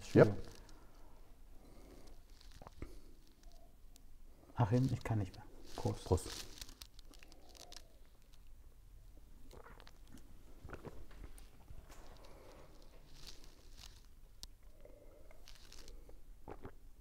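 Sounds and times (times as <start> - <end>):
soft rustles: 0.0 - 3.8, 4.5 - 8.6, 9.6 - 14.6, 15.4 - 16.1
sipping and swallowing beer: 14.5 - 17.0.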